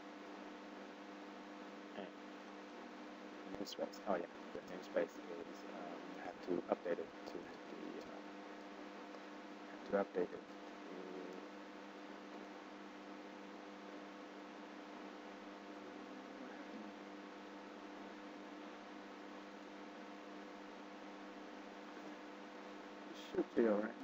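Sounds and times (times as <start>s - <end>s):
faint electrical hum: 0.0s - 24.0s.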